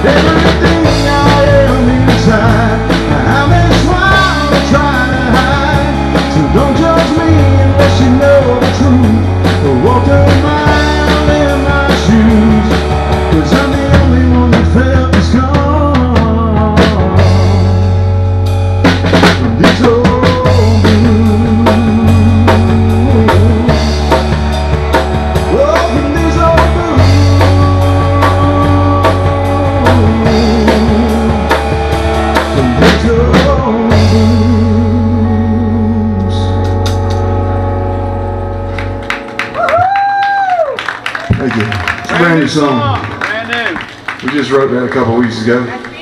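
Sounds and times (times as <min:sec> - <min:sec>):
drum kit with cymbals: 0:00.0 - 0:35.0
electric guitar line: 0:00.0 - 0:44.1
scattered clapping: 0:38.7 - 0:46.0.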